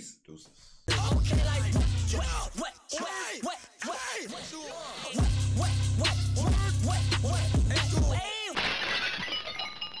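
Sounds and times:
glass breaking: 8.6 - 10.0.

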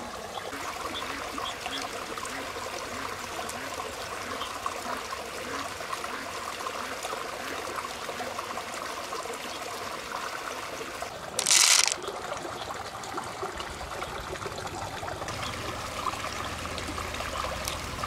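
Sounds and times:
shallow stream trickling: 0.0 - 18.0
shells clicking when handled: 11.4 - 12.0.

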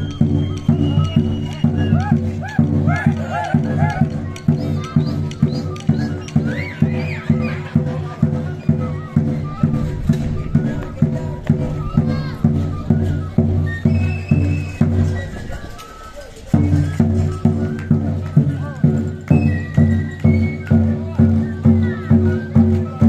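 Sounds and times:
bass drum beating: 0.0 - 15.3.

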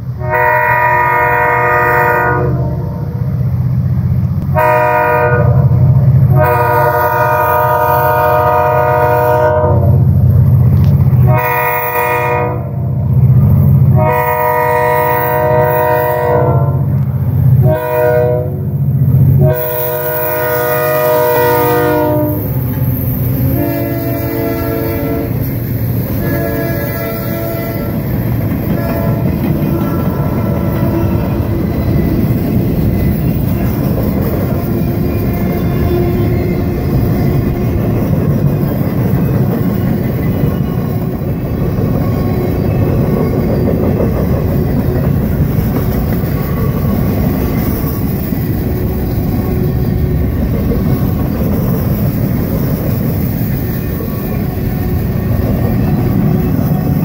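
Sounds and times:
rumble of freight train rolling: 0.0 - 57.0
locomotive air horn blasts: 0.2 - 3.2, 4.4 - 10.0, 11.2 - 12.9, 13.9 - 17.0, 17.6 - 22.7, 23.4 - 31.7.

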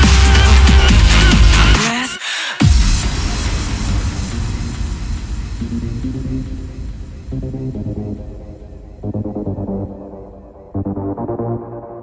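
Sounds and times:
deep bass rumble: 2.6 - 11.6
electronic noisy wash: 2.6 - 12.0.

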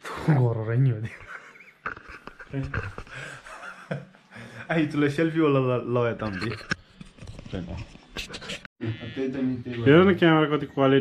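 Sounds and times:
breathy sounds: 2.9 - 3.5.

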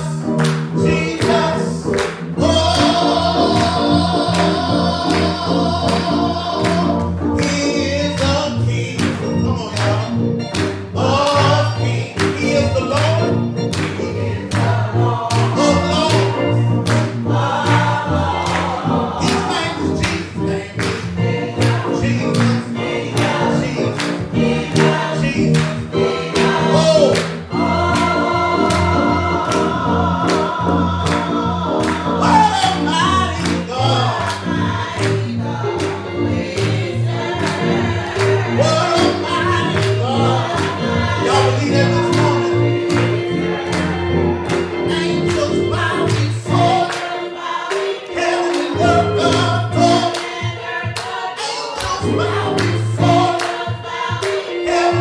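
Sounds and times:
gospel music with singing: 0.0 - 55.0
keyboard accompaniment: 0.0 - 55.0.

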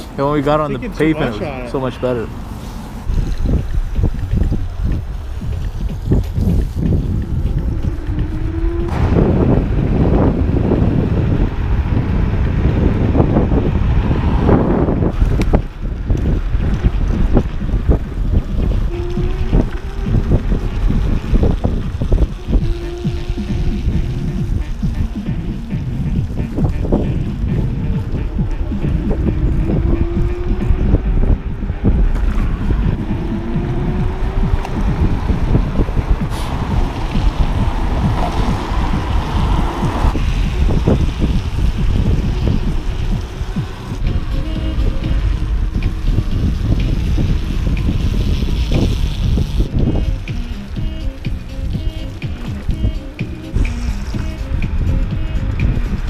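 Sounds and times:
road and tyre rumble: 0.0 - 56.0
wind buffeting microphone: 0.0 - 56.0
music: 4.0 - 10.2, 16.1 - 56.0.

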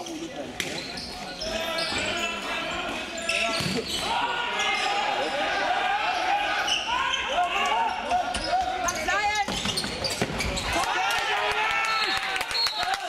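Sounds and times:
people shouting: 1.5 - 9.4, 10.6 - 12.3
ball bouncing on wooden court: 9.4 - 10.6.

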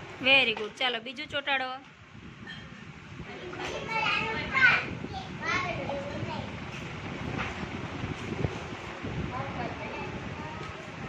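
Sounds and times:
young children chattering: 3.3 - 6.6.

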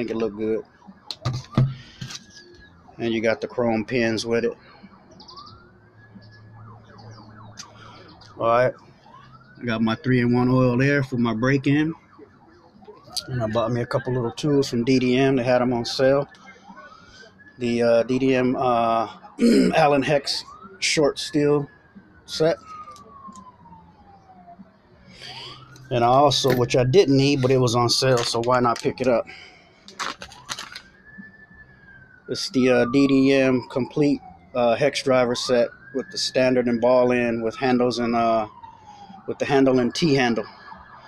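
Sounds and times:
distant siren wailing: 0.0 - 41.0
bird chirps: 5.1 - 5.6
plastic bag rustling: 29.9 - 30.8.

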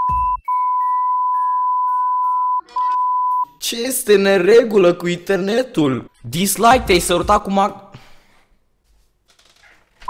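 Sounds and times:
censor bleep tone: 0.0 - 3.5.

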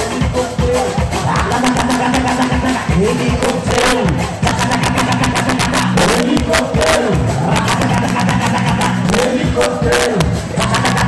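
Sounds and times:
dance music through loudspeakers: 0.0 - 11.0.

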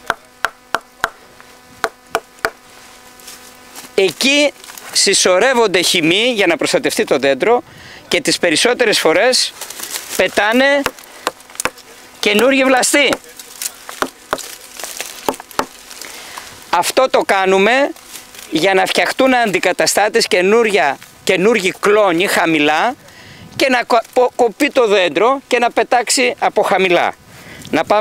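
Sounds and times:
stone knocking on tree trunk: 1.8 - 2.6, 10.8 - 11.8, 13.9 - 14.5, 15.2 - 15.8.

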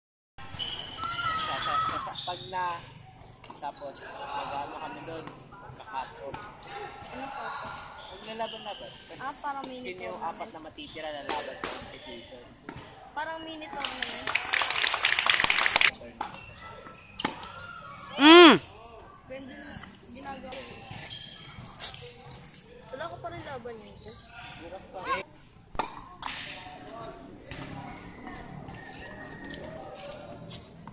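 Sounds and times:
faint chatter of people: 15.9 - 30.9
voices: 18.2 - 18.6.

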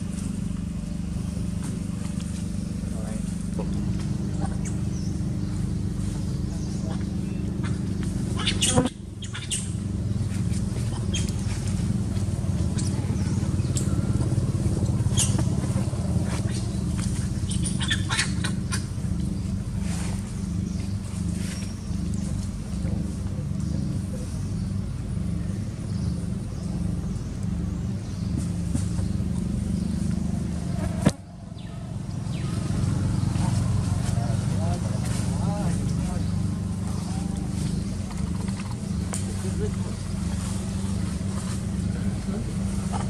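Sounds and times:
low engine hum: 0.0 - 43.0
rustles: 0.0 - 43.0.

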